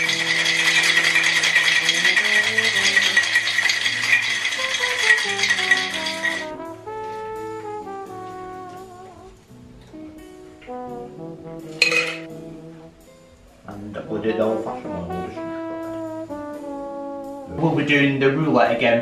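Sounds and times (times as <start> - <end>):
ice rattling in cocktail shaker: 0.0 - 6.5, 11.8 - 12.3
background music: 0.0 - 19.0.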